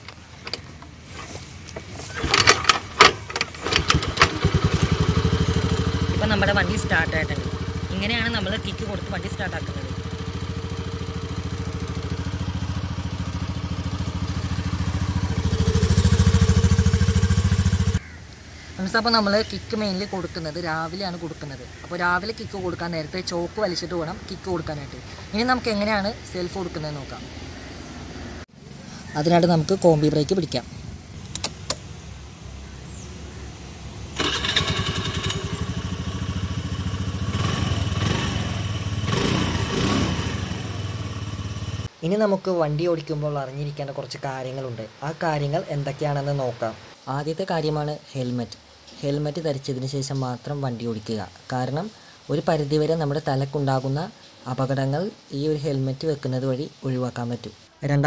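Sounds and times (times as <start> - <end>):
scooter engine running: 0.2 - 18.1, 34.2 - 41.9
clicks: 31.2 - 31.9.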